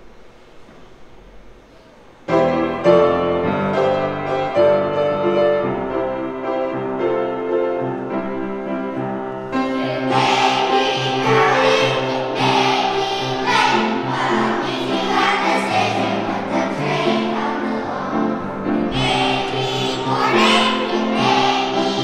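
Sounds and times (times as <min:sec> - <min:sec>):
piano accompaniment: 0:02.3 - 0:22.0
children's choir singing: 0:09.5 - 0:22.0.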